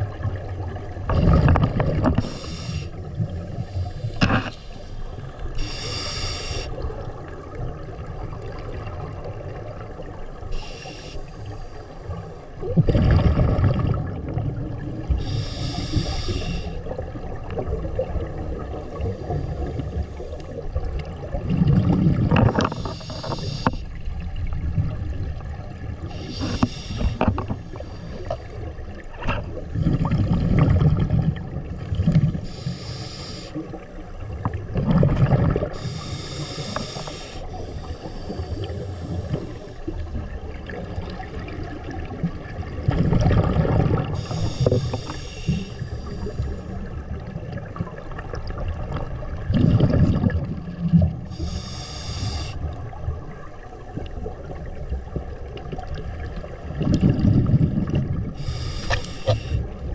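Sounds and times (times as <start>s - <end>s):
hissing inhale through regulator: 2.2s - 6.8s, 10.5s - 12.6s, 15.0s - 17.0s, 22.5s - 24.0s, 26.0s - 28.8s, 32.4s - 33.8s, 35.6s - 40.1s, 44.0s - 46.9s, 51.2s - 52.7s, 58.3s - 59.8s
bubbling exhaled air: 12.6s - 20.3s, 21.2s - 23.8s, 29.4s - 33.7s, 34.6s - 53.0s, 56.6s - 59.9s.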